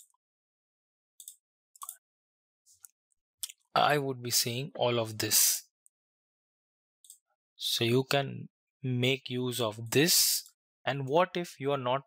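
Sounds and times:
computer mouse clicking: 1.2s - 2.0s.

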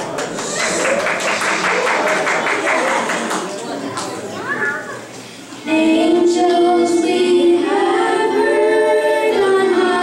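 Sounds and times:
young singers singing long notes: 5.6s - 10.0s.

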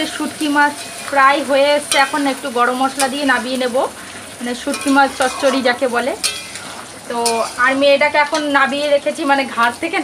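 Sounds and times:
curry sizzling: 0.0s - 10.0s
metal spatula scraping pan: 4.6s - 8.6s.

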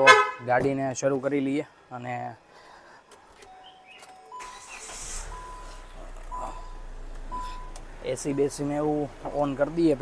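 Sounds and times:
dashboard warning chime beeping: 3.4s - 9.0s
car engine starting and running: 3.8s - 10.0s.

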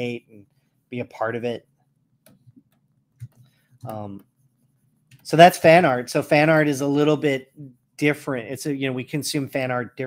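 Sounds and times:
computer mouse and keyboard clicks: 2.2s - 4.3s.

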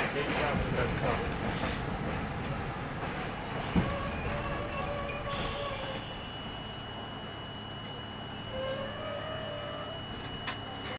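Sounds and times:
subway train rumbling: 0.0s - 10.9s.

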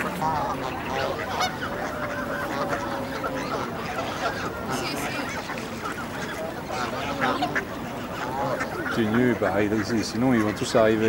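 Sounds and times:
geese honking: 0.0s - 11.0s.

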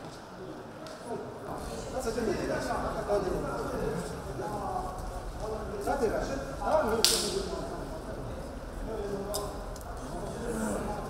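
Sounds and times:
murmur of men's voices: 0.0s - 11.0s.

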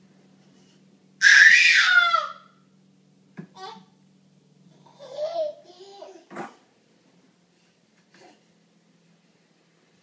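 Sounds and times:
baby squealing: 1.2s - 2.5s.

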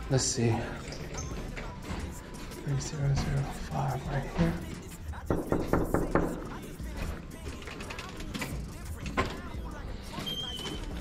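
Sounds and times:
knocking on a door: 5.3s - 6.6s.

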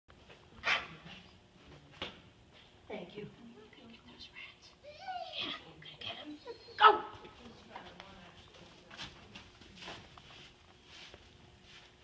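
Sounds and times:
dog whining: 4.8s - 5.6s, 6.3s - 7.2s
dog barking: 6.8s - 7.2s.

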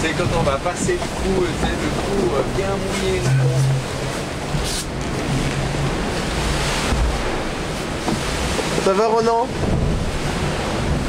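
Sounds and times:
wind and sea water rushing: 0.0s - 11.0s
wind buffeting microphone: 0.0s - 11.0s.

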